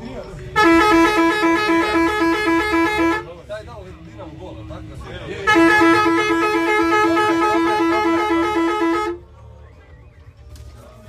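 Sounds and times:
horn pulsing: 0.6s - 3.3s, 5.4s - 9.2s.

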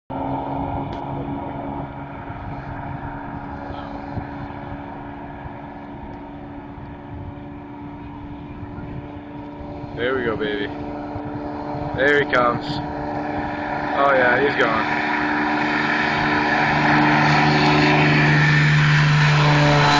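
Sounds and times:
engine drone: 0.1s - 19.9s
wind buffeting microphone: 0.1s - 19.9s.

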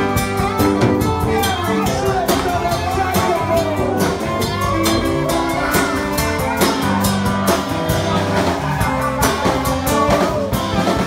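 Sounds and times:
drum kit beat: 0.0s - 11.0s
electric guitars: 0.0s - 11.0s
saxophone: 0.0s - 11.0s.

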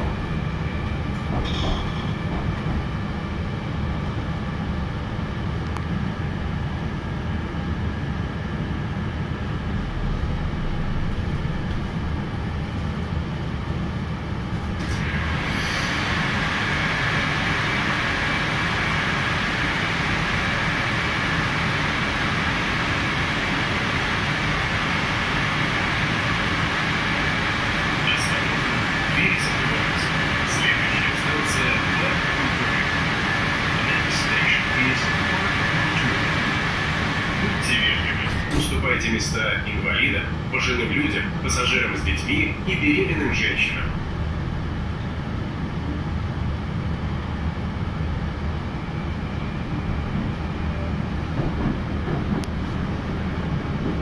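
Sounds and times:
train doors opening: 0.0s - 4.1s, 14.4s - 18.1s, 33.8s - 39.3s, 49.7s - 54.0s
hissy station platform noise: 0.0s - 54.0s
subway car low rumble: 0.0s - 54.0s.

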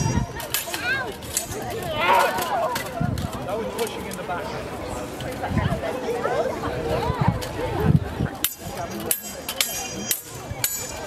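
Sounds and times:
swords clashing: 8.4s - 11.0s.

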